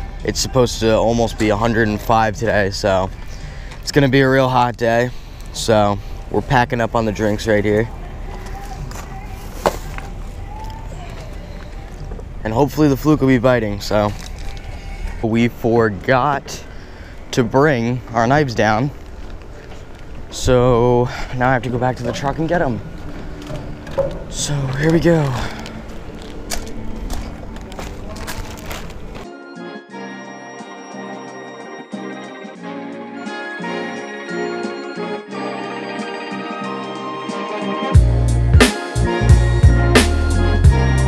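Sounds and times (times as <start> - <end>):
outdoor background noise: 0.0 - 29.3
background music with sustained chords: 0.0 - 41.0
footsteps on gravel: 1.2 - 29.3.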